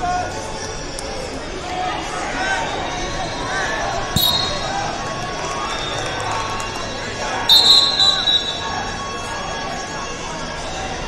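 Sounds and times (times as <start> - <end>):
crowd chatter: 0.0 - 11.0
referee's whistle blasts: 4.2 - 6.1, 7.4 - 9.1.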